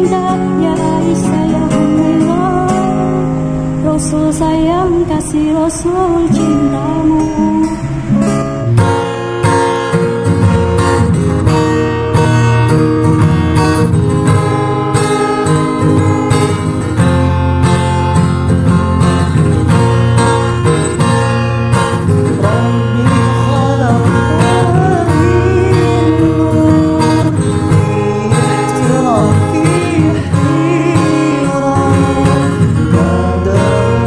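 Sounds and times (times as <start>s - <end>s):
person singing: 0.0s - 8.5s, 22.2s - 34.0s
acoustic guitar strumming: 0.0s - 34.0s.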